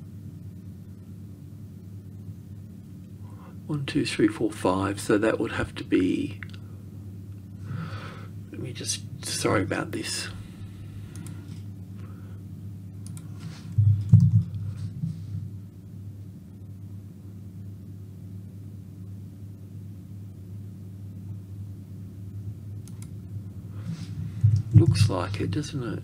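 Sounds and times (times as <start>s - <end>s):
steady low hum: 0.0s - 26.0s
computer mouse clicks: 11.1s - 11.5s, 13.0s - 13.3s, 22.8s - 23.2s.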